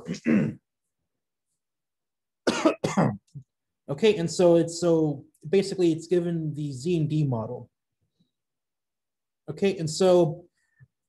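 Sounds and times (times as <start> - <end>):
man coughing: 0.0 - 0.6, 2.4 - 3.4.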